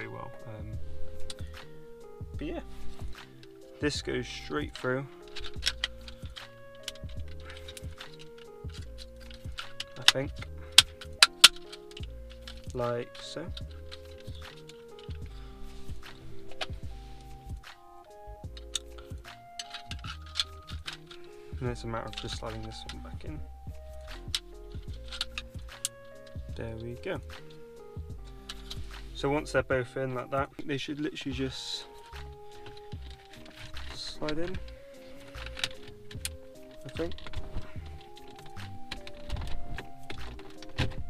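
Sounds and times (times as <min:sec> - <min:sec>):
background music: 0:00.0 - 0:41.0
phone mount clicking: 0:04.7 - 0:15.3, 0:16.0 - 0:21.4, 0:23.8 - 0:26.5, 0:31.8 - 0:41.0.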